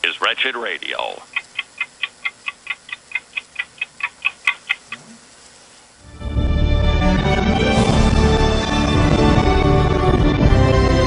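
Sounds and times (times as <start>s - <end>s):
fast clock-like ticking: 1.0s - 5.1s.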